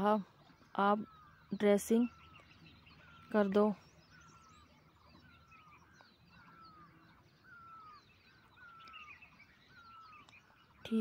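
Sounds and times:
faint bird calls: 0.0 - 11.0
higher bird chirps: 0.0 - 11.0.

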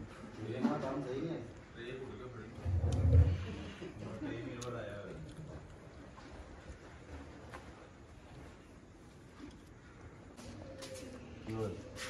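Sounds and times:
men talking in background: 0.2 - 5.6, 11.4 - 12.0.

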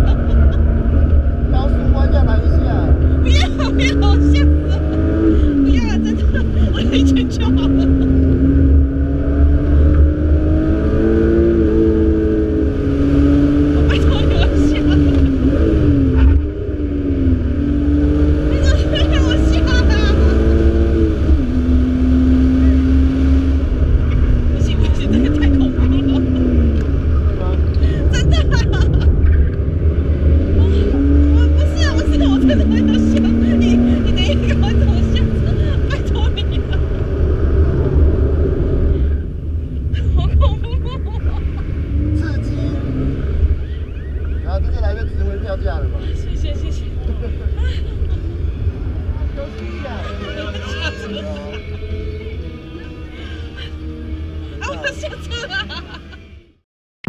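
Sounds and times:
car engine revving: 0.0 - 56.6
road rumble: 0.0 - 56.6.

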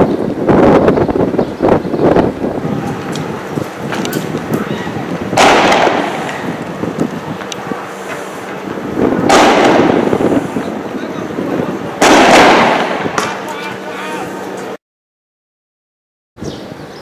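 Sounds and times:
loud explosive bangs: 2.1 - 13.9.

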